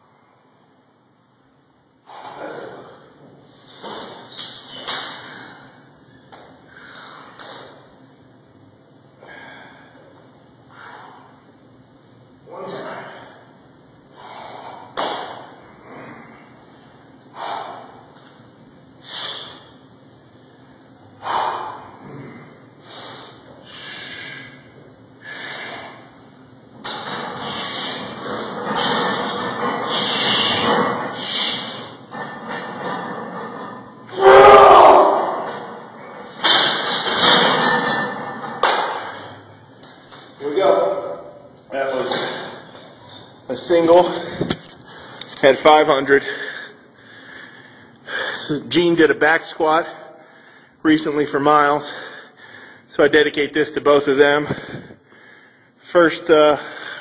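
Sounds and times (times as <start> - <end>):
straining breaths: 2.0 - 7.8, 9.2 - 11.6, 12.8 - 34.2, 46.0 - 48.7, 49.8 - 50.8, 51.8 - 52.9, 54.1 - 55.9, 56.5 - 57.0
sharp forceful breaths: 4.8 - 7.6, 10.7 - 11.4, 14.1 - 18.1, 19.0 - 19.8, 20.6 - 26.2, 26.9 - 32.2, 46.2 - 48.5, 49.9 - 50.8, 51.8 - 52.9, 54.4 - 55.8
person shouting with effort: 34.1 - 35.4.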